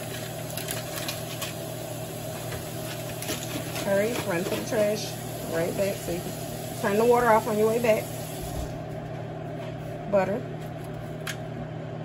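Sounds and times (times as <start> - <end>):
pot boiling and bubbling: 0.0 - 9.0.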